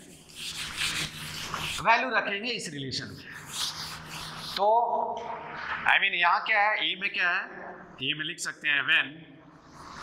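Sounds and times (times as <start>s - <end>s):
duster rubbing on whiteboard: 0.0s - 1.9s, 3.1s - 4.6s, 9.6s - 10.0s.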